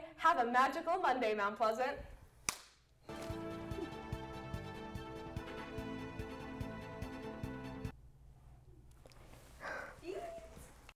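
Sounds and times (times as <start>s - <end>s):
music with steady beat: 3.1s - 7.9s.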